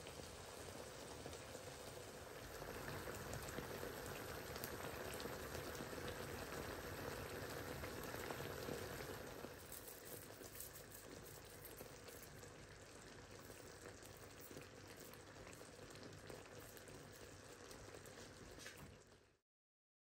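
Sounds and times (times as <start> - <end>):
gravy bubbling in a pan: 0.0 - 19.4.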